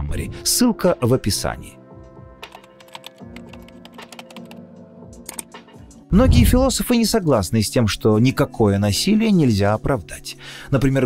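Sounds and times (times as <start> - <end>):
soft background music: 0.0 - 11.0
quick irregular clicks: 2.5 - 4.6, 5.2 - 5.6.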